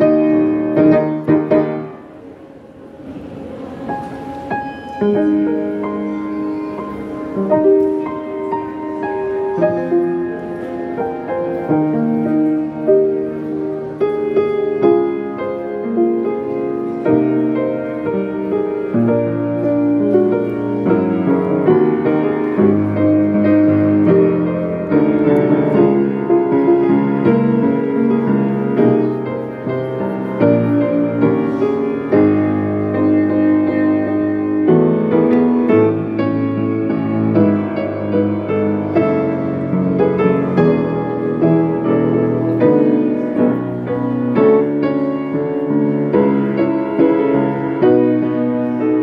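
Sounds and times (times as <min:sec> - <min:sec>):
grand piano ballad: 0:00.0 - 0:49.0.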